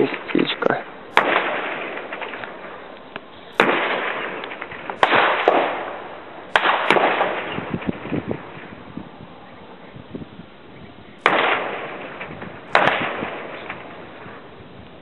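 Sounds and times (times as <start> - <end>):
distant gunshots with rolling echo: 0.0 - 9.8, 11.2 - 14.7.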